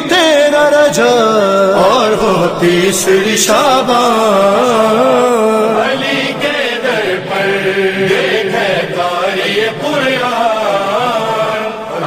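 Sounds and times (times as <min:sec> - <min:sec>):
man chanting a devotional hymn: 0:00.0 - 0:12.0.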